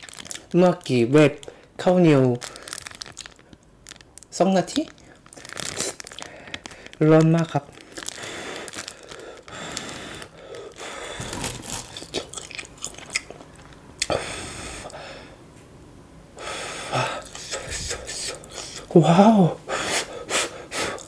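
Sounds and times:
person chewing and biting: 5.2s - 6.9s, 7.7s - 14.1s
wet mouth clicks: 11.3s - 14.1s, 17.2s - 18.9s.

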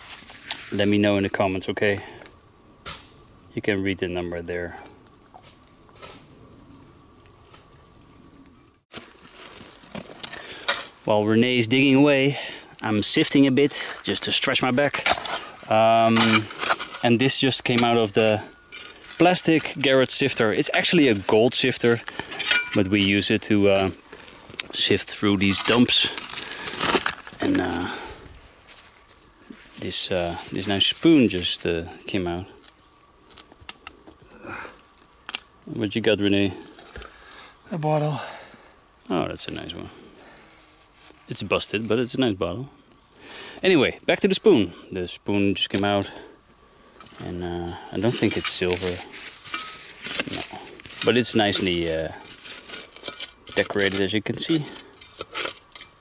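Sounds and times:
faint rustle: 4.2s - 43.7s, 45.8s - 56.0s
soil and stones rattling in sifter: 8.9s - 28.2s, 28.8s - 32.6s, 47.0s - 56.0s
gloved hand rustling: 17.8s - 31.4s, 40.1s - 41.3s, 47.0s - 56.0s.

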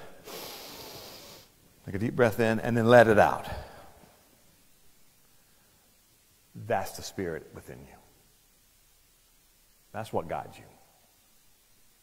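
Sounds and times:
man inhaling deeply: 0.0s - 1.6s.

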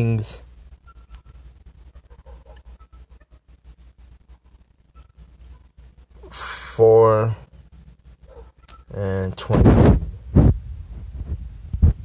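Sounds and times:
steady low rumble: 9.3s - 12.0s.

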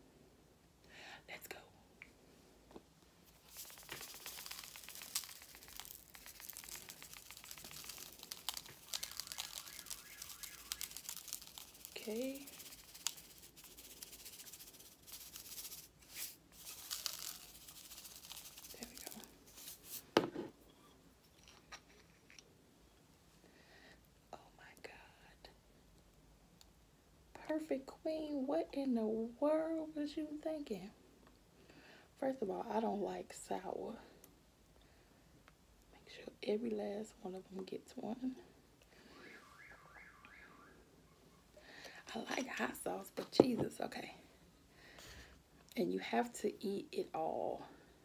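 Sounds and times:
salt grains ticking on fruit: 3.4s - 20.0s.

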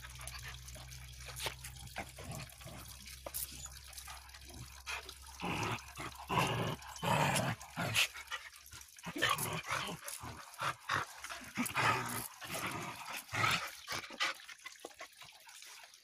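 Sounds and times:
dogs growling in play: 0.0s - 14.7s.

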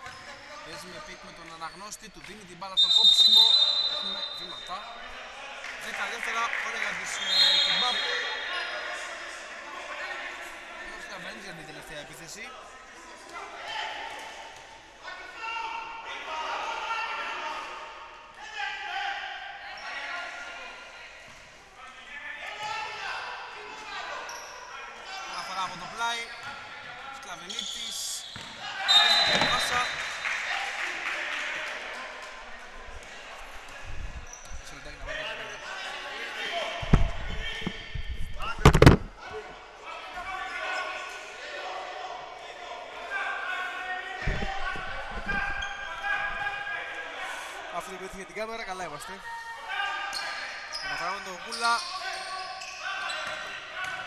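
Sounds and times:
players' voices echoing: 0.0s - 54.0s.

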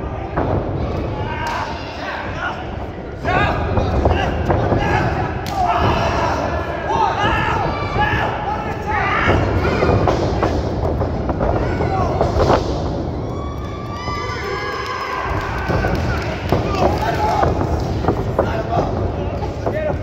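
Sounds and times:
crowd shouting: 0.0s - 10.2s
wrestlers thudding on canvas: 0.0s - 14.2s, 15.3s - 20.0s.

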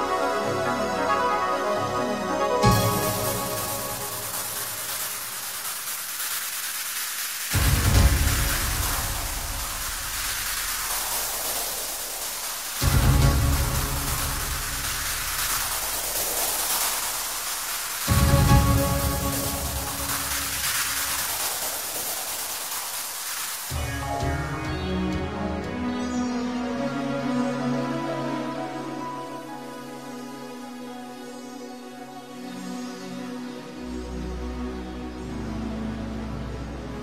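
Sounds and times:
electronic white noise hiss: 0.0s - 24.8s.

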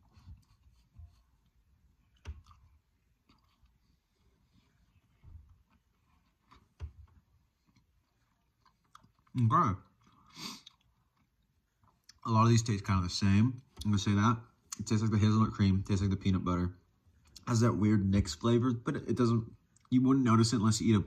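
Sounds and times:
faint chewing: 0.0s - 12.3s, 19.6s - 20.0s.

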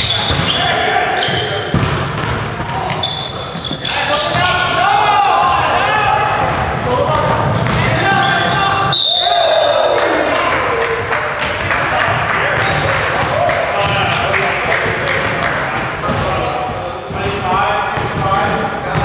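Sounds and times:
sneakers squeaking: 0.0s - 10.0s, 12.6s - 14.2s, 14.9s - 19.0s
players calling out: 0.0s - 17.4s
basketball bouncing on hardwood: 6.4s - 8.6s.

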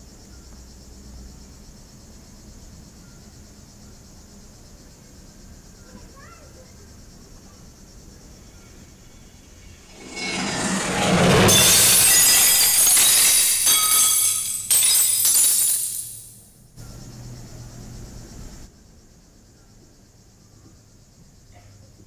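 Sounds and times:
faint crickets: 0.0s - 10.9s, 11.6s - 22.0s
shimmering crash sound cue: 8.9s - 15.2s.

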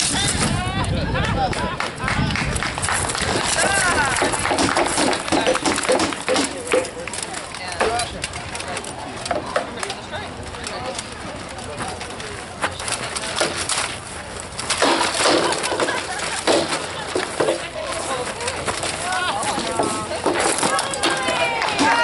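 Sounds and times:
onlookers talking: 0.0s - 22.0s
armour and weapons clanking: 2.9s - 22.0s.

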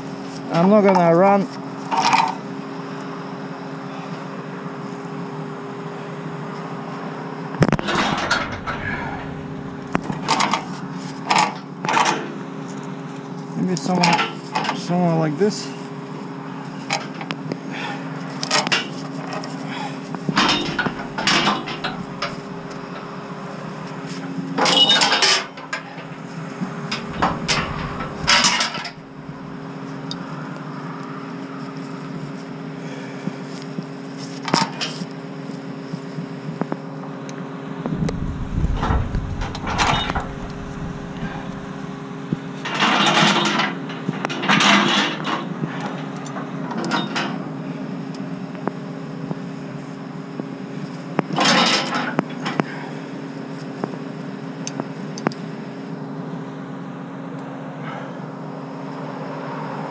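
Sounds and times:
steady low hum: 7.6s - 11.0s, 19.7s - 24.2s, 25.9s - 30.8s, 37.8s - 42.6s
steel chain clinking and rattling: 20.4s - 23.1s, 26.9s - 29.6s, 38.5s - 41.9s.

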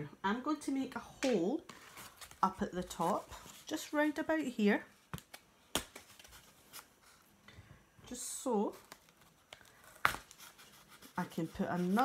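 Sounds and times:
needle piercing paper plate: 9.8s - 12.0s.

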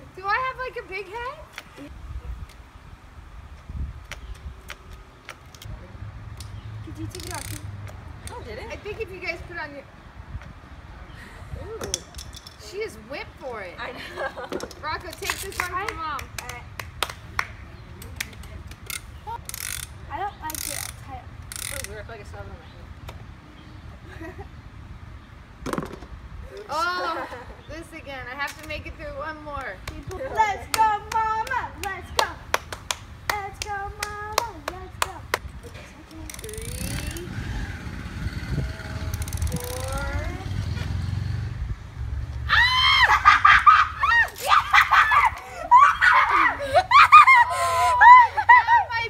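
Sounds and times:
hands clapping: 15.3s - 18.8s, 29.6s - 35.5s
shrieking and laughter: 42.5s - 49.0s.

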